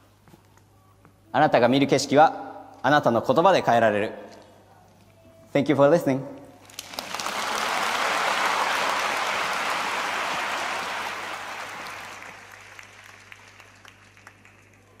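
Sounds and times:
audience applauding: 6.6s - 15.0s.

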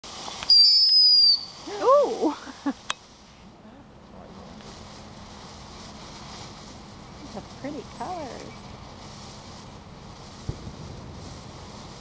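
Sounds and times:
steady hiss: 0.0s - 12.0s
wind rumbling on microphone: 4.2s - 12.0s.

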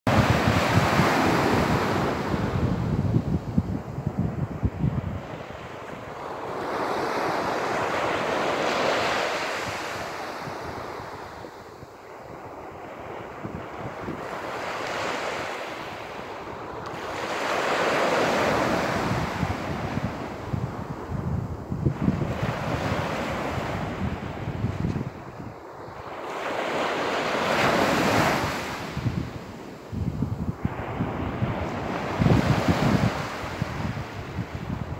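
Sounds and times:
small waves breaking on sand: 0.1s - 34.9s
surf washing onto beach: 0.1s - 34.9s
wind rumbling on microphone: 0.1s - 34.9s.

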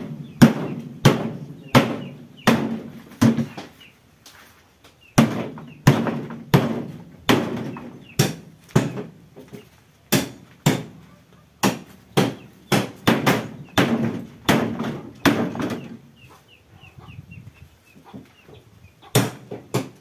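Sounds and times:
chicken clucking: 1.4s - 4.0s, 7.8s - 8.2s, 11.0s - 12.7s, 15.1s - 19.2s.

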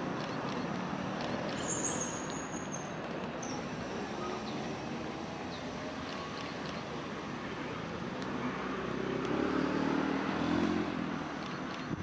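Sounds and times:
vehicle engine passing: 8.6s - 12.0s.

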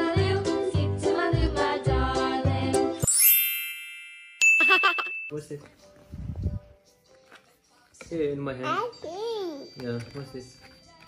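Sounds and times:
high held chime tone: 3.0s - 5.5s
sparkling chime: 3.0s - 5.5s
child giggling: 4.5s - 5.3s.

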